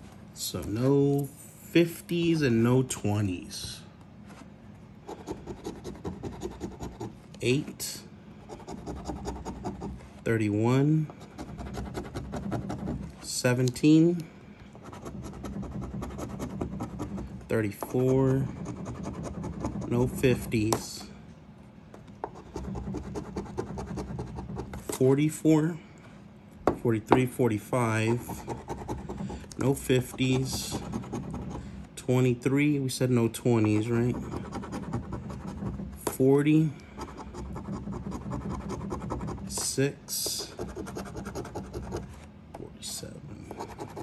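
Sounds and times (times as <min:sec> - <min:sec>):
coin scratching lottery ticket: 0:05.1 - 0:07.1, 0:08.5 - 0:09.9, 0:11.2 - 0:13.0, 0:14.9 - 0:20.7, 0:28.0 - 0:31.6, 0:33.6 - 0:35.9, 0:37.0 - 0:39.7, 0:40.3 - 0:42.1, 0:43.5 - 0:44.0.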